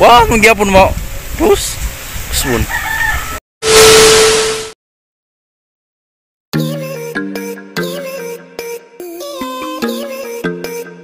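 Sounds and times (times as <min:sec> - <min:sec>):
burst of static hiss: 0:03.6 - 0:04.8.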